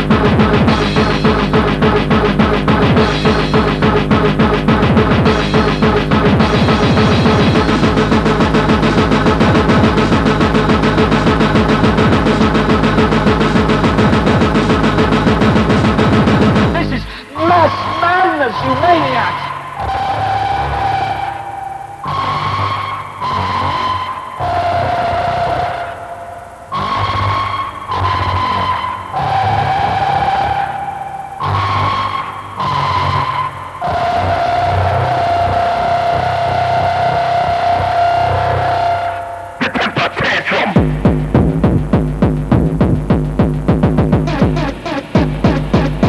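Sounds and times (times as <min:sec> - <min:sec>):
electronic rave music: 0:00.0 - 0:46.0.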